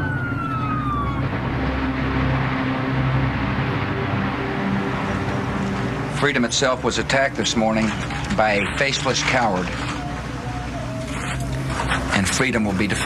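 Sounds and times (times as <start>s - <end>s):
emergency vehicle siren wailing: 0.0s - 13.0s
low droning tones: 0.0s - 13.0s
steady rushing noise: 0.7s - 13.0s.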